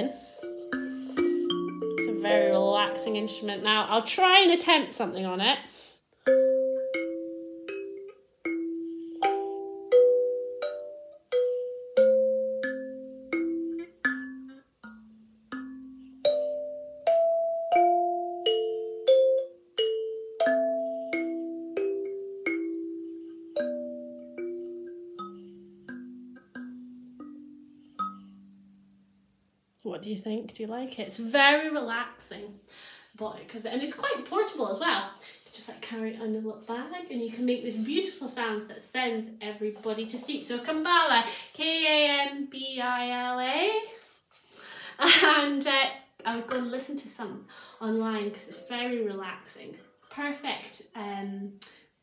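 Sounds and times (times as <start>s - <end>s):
kalimba melody: 0.0s - 4.0s, 6.2s - 29.1s.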